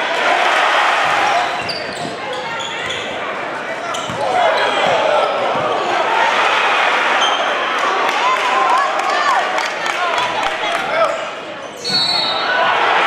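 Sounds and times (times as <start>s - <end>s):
crowd talking and shouting: 0.0s - 13.0s
basketball bouncing: 4.0s - 5.8s.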